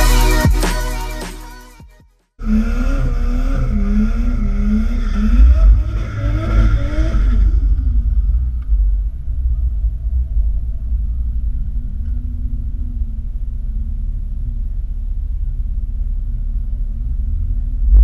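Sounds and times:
wavering squeal: 2.4 - 8.4.

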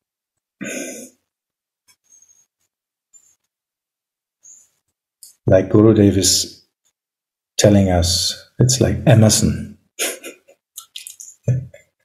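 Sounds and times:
man clearing his throat: 0.6 - 1.2.

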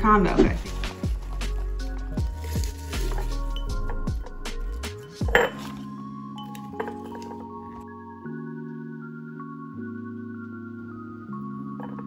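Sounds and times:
background music with steady beat: 0.0 - 12.0
spinach leaves crunching in jar: 2.2 - 3.9
glass jar clinking: 2.4 - 7.8, 11.7 - 12.0.

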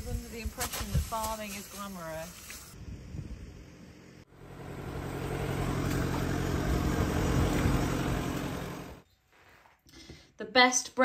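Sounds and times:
vehicle engine running: 1.2 - 9.0.

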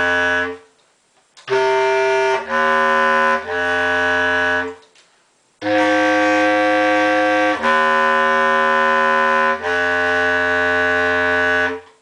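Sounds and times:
bass clarinet long note: 0.0 - 0.6, 1.5 - 4.8, 5.6 - 11.8.

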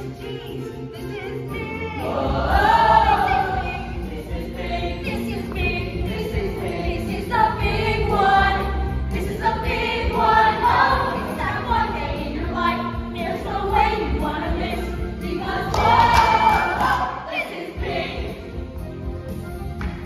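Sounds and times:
ensemble singing in chorus: 2.0 - 18.7.

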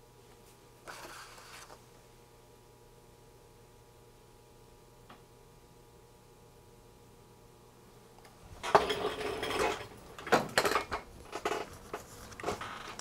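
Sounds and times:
metal tools clinking and clattering: 8.6 - 12.7.

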